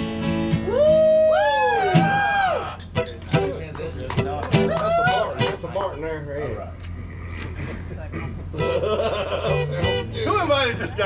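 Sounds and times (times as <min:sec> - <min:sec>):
steady low hum: 0:00.0 - 0:11.0
indistinct voices talking: 0:01.7 - 0:11.0.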